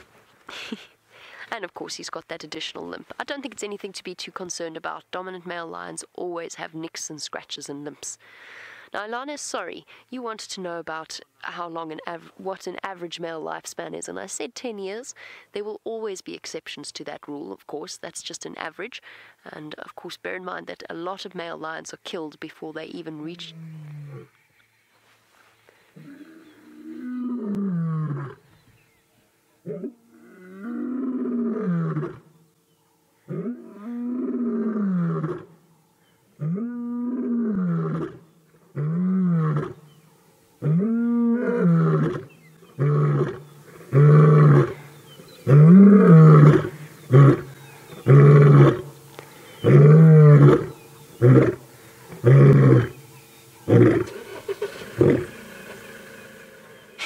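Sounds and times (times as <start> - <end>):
lion roaring: 52.2 - 53.0, 53.7 - 57.0.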